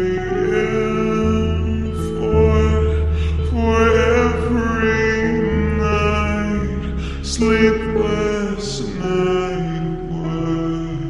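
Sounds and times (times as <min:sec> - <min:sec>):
deep held vocal note: 0:00.0 - 0:11.0
steady low bass: 0:00.0 - 0:11.0.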